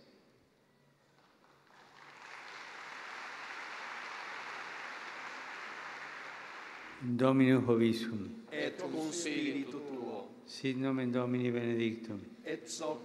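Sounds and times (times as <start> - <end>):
audience applauding: 1.2 - 7.1.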